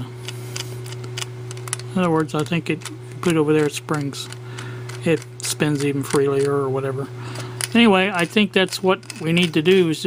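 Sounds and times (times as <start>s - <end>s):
steady low hum: 0.0s - 10.0s
plastic parts clicking: 0.8s - 6.6s, 7.6s - 9.8s.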